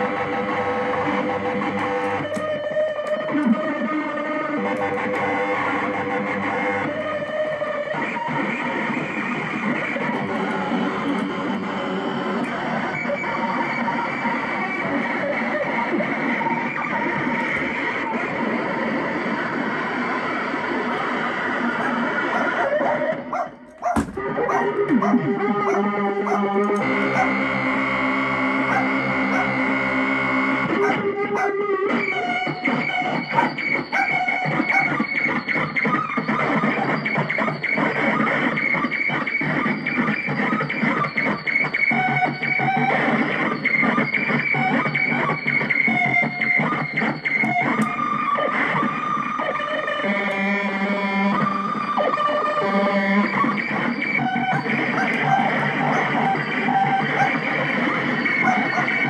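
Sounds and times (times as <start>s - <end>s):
glitchy sampling keyboard: 0.0s - 59.0s.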